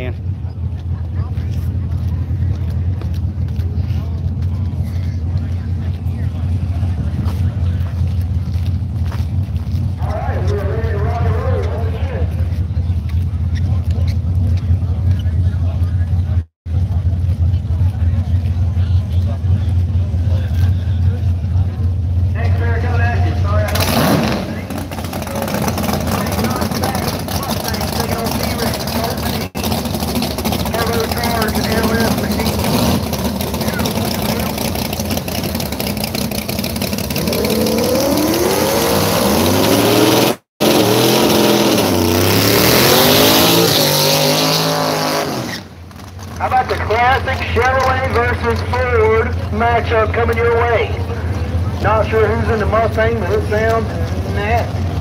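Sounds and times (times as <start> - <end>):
engine idle rumble: 0.0 - 37.9, 45.7 - 55.0
race car engine revving: 0.0 - 55.0.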